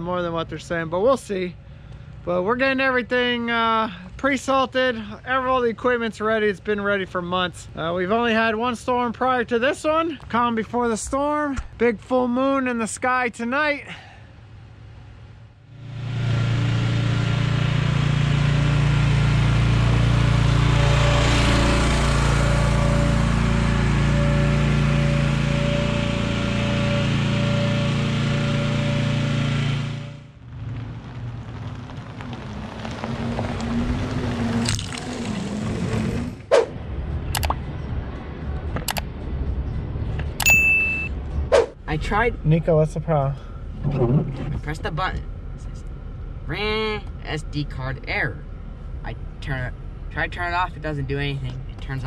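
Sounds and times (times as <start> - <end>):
music with sustained tones: 20.6 - 30.1
steady low rumble: 30.2 - 52.0
sharp clicks: 37.4 - 37.6, 38.8 - 39.1.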